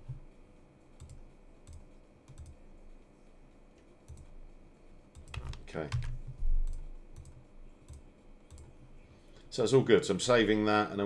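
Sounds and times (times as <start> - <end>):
computer mouse clicks: 1.0 - 2.6, 4.1 - 4.3, 5.1 - 8.7.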